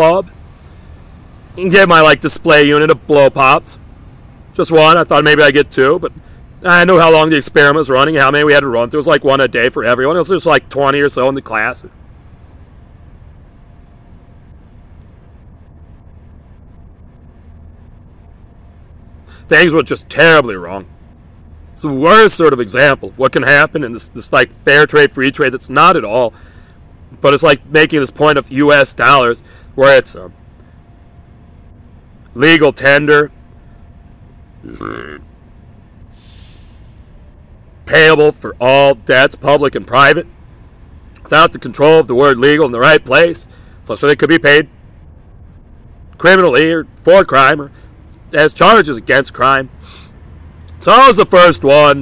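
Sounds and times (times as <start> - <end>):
low rumble of background noise: 0.0 - 52.0
faint breath: 0.3 - 1.2, 6.2 - 6.5, 12.1 - 12.8, 19.2 - 19.5, 26.3 - 26.9, 29.4 - 29.8, 36.1 - 37.0, 43.4 - 43.8, 47.7 - 48.0, 49.8 - 50.2
man burping: 34.6 - 35.3.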